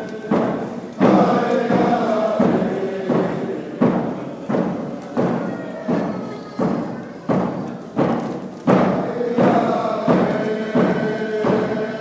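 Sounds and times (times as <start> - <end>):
voices chanting a song: 0.0 - 8.1, 8.7 - 12.0
drum beating in reverberant hall: 0.0 - 12.0.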